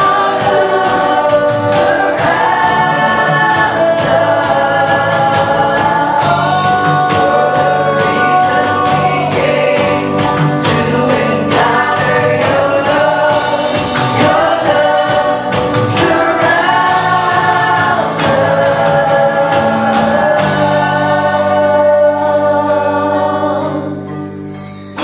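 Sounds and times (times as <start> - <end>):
congregation singing: 0.0 - 24.3
woman singing lead: 0.0 - 24.6
drums: 0.0 - 25.0
electric guitar: 0.0 - 25.0.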